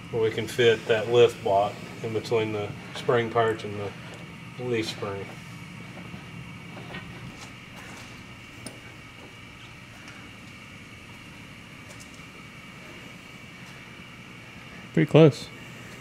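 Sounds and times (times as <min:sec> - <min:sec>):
steady mechanical hum: 0:00.0 - 0:16.0.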